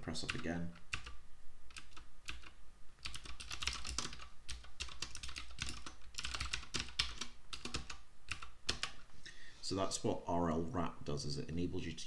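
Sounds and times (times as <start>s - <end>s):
typing on computer keyboard: 0.3s - 9.0s.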